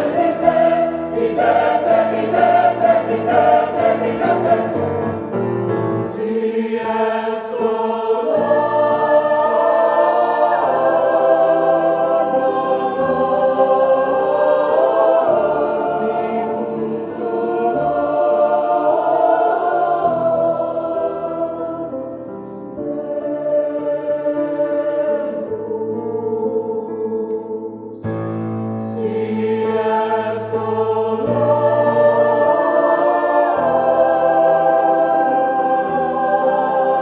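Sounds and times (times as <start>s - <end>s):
choir singing held chords: 0.0s - 5.3s, 5.9s - 37.0s.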